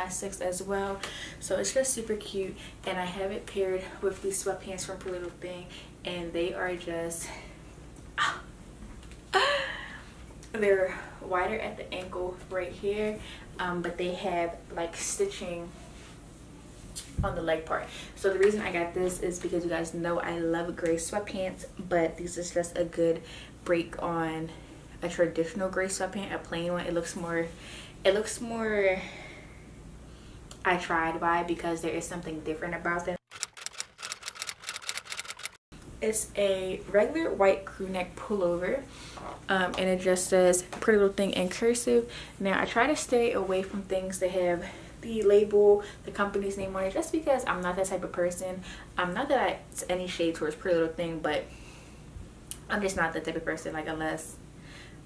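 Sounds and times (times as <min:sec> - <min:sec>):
typewriter key clicks: 0:33.3 - 0:35.6.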